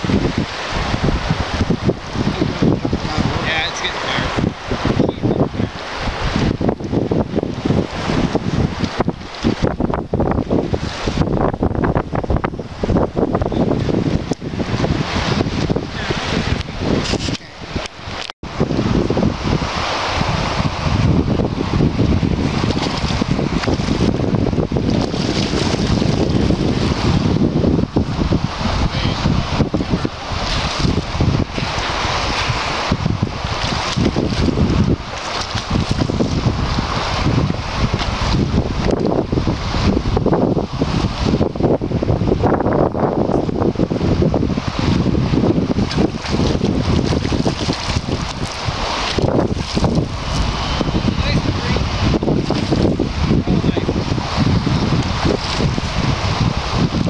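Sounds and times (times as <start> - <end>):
wind blowing across microphone: 0.0 - 57.0.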